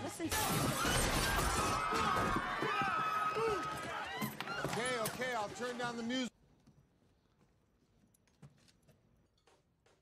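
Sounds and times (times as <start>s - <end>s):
glass shattering: 0.3s - 2.3s.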